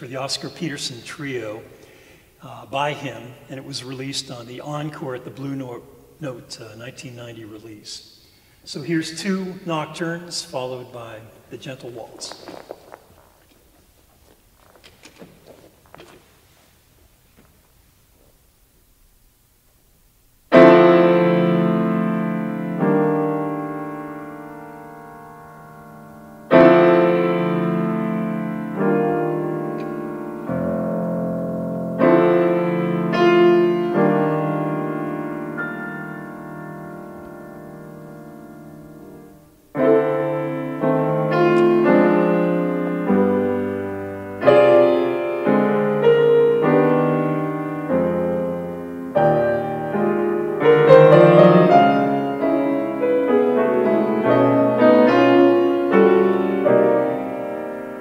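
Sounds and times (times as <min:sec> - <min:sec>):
grand piano chords: 0:00.0 - 0:16.1, 0:20.4 - 0:58.0.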